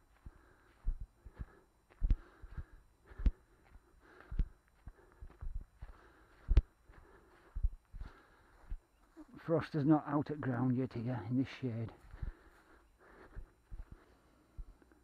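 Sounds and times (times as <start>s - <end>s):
footsteps on frosty grass: 0.0s - 14.8s.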